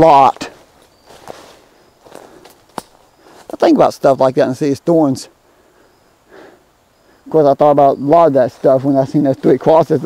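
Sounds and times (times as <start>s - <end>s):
footsteps through dry leaves: 0.2s - 3.6s.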